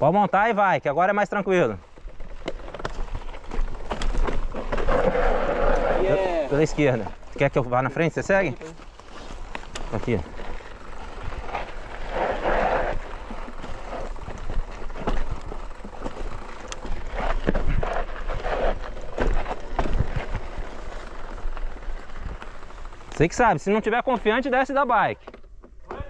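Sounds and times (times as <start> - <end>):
bike knocks and rattles: 1.6 - 5.2, 6.8 - 26.0.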